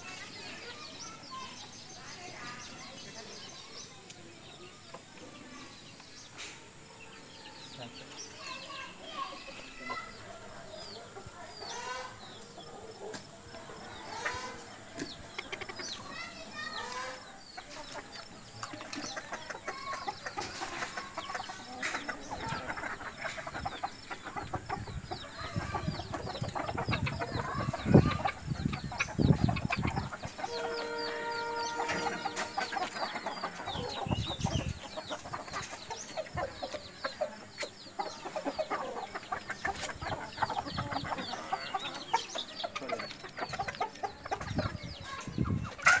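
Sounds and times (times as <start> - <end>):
chickens clucking and calling: 0.0 - 46.0.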